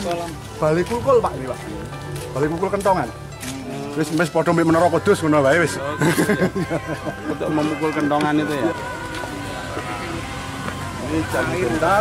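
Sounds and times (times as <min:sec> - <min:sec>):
music with held tones: 0:00.0 - 0:12.0
people talking: 0:00.0 - 0:12.0.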